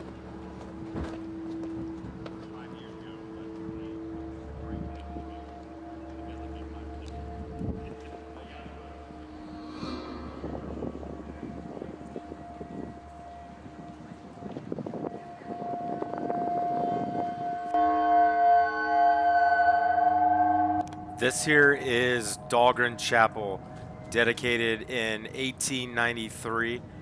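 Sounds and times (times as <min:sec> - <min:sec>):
droning music: 0:00.0 - 0:27.0.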